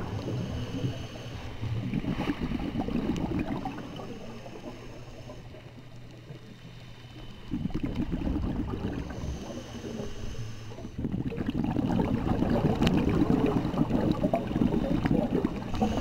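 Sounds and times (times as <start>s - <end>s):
scuba bubbles gurgling: 0.0s - 6.6s, 7.2s - 16.0s.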